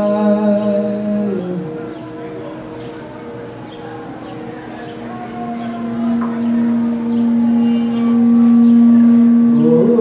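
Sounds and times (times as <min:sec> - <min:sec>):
person singing: 0:00.0 - 0:01.8, 0:05.0 - 0:10.0
higher held tone: 0:03.8 - 0:10.0
sustained drone note: 0:04.3 - 0:10.0.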